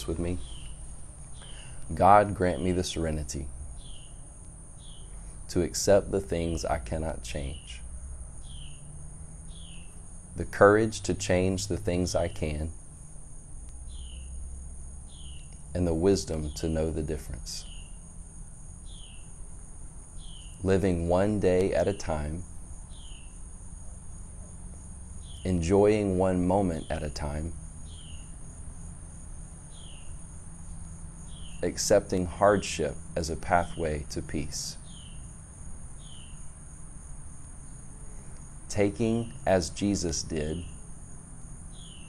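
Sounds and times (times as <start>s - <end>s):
high-pitched insect chorus trilling: 0.0s - 42.0s.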